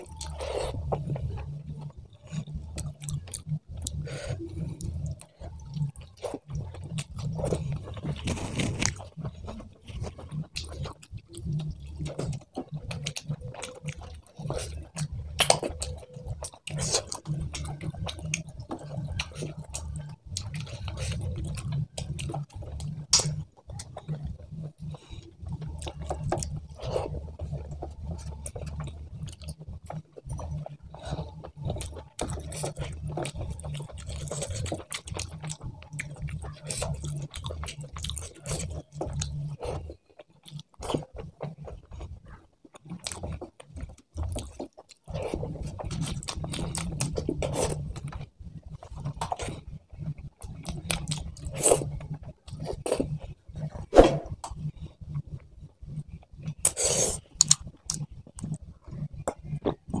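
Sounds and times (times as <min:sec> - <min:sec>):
chewing and mouth clicks: 0:00.0 - 1:00.0.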